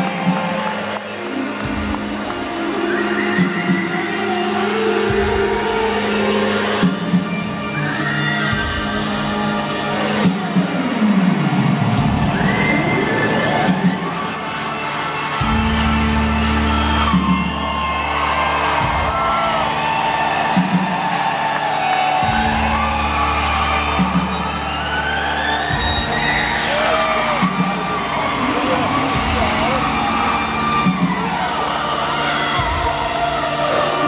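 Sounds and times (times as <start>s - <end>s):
crowd whooping and cheering: 0.0s - 34.0s.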